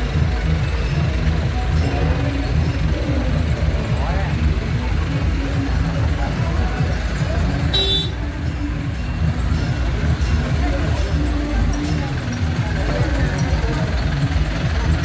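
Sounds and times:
crowd voices: 0.0s - 15.0s
truck engine rumbling: 0.0s - 15.0s
high-pitched horn toot: 7.7s - 8.2s.

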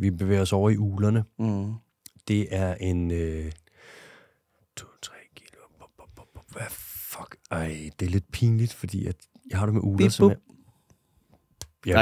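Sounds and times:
soft breath: 3.7s - 4.6s
man whispering: 4.8s - 8.1s.

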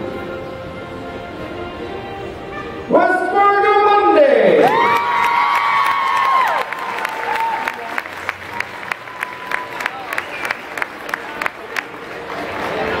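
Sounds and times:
applause: 4.6s - 13.0s
crowd cheering: 4.6s - 13.0s.

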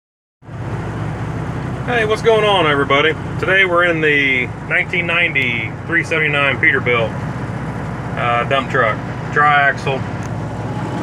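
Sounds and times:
diesel engine idling: 0.4s - 11.0s.

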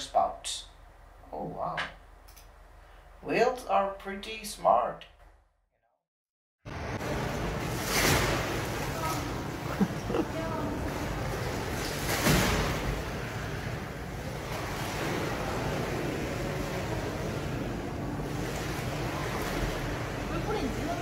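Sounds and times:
pool water splashing: 6.7s - 21.0s.

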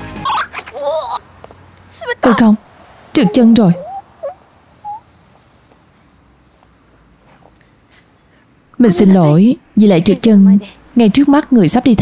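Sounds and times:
faint background noise: 0.0s - 12.0s
woman crying out: 3.2s - 5.0s.

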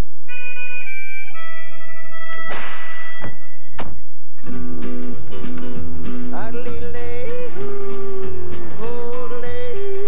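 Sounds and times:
electronic chime tones: 0.3s - 3.8s
sharp thuds: 2.5s - 4.1s.

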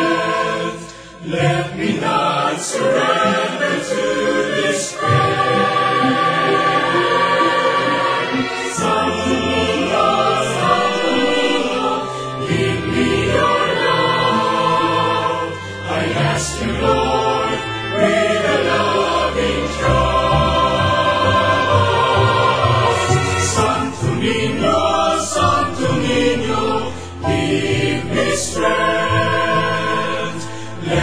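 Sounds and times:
choir singing a hymn: 0.0s - 31.0s.

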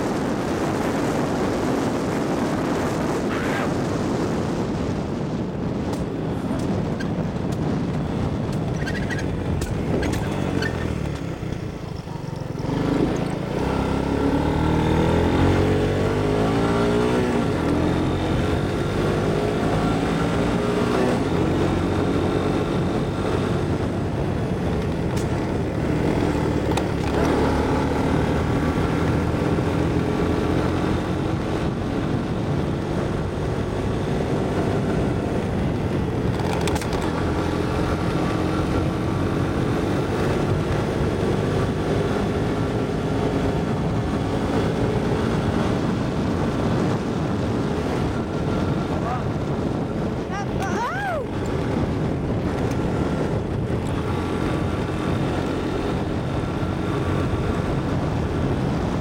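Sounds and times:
three-wheeler engine accelerating: 0.0s - 59.0s.

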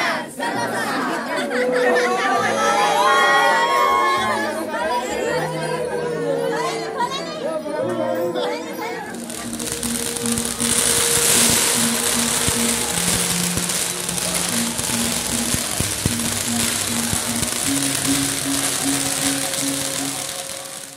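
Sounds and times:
sharp crackles: 9.1s - 20.9s
spark fountains and flames hissing: 9.1s - 20.9s.

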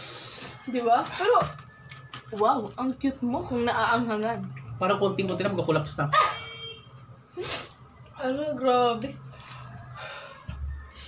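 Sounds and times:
person hissing breath: 0.0s - 0.6s, 7.4s - 7.8s.

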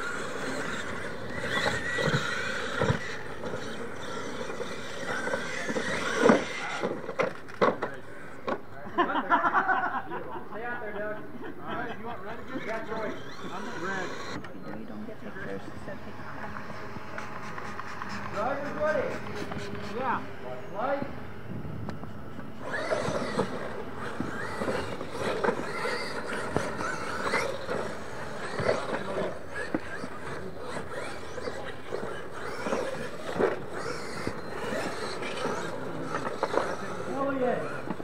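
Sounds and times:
short squeals and knocks: 0.0s - 7.8s
radio-controlled trucks on dirt: 0.0s - 38.0s
people talking indistinctly: 7.7s - 21.3s.

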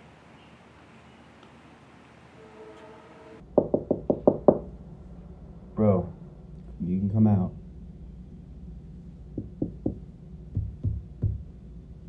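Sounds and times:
knocks on a door: 3.5s - 4.7s, 9.4s - 11.5s.

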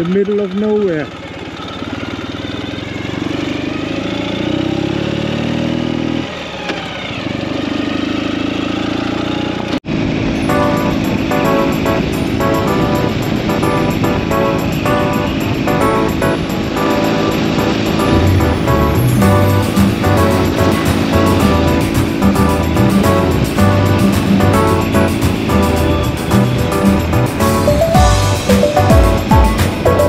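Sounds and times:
motorcycle engine pulling away: 0.0s - 30.0s
background music with repeating notes: 10.4s - 30.0s.

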